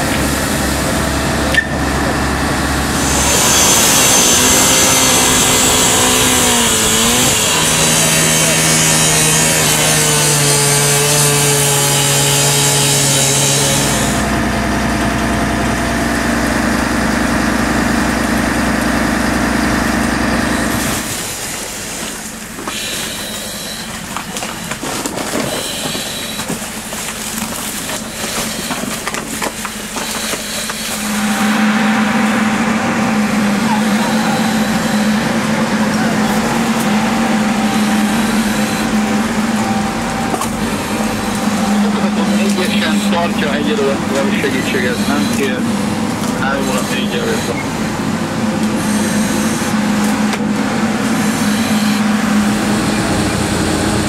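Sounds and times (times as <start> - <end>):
angle grinder cutting metal: 0.0 - 14.5, 30.2 - 47.8, 48.6 - 54.0
voices: 0.0 - 16.6, 31.0 - 54.0
machine hum: 0.0 - 54.0.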